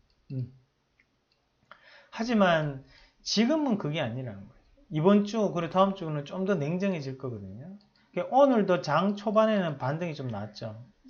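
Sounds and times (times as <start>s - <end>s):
man humming: 0.3s - 0.5s.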